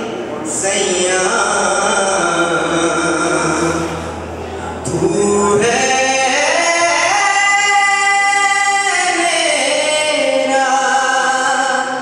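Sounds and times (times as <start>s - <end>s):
man singing a long high note: 0.0s - 12.0s.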